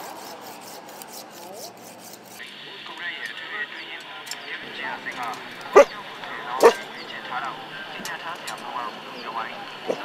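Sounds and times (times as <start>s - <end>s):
dog barking: 5.7s - 6.0s, 6.6s - 6.8s.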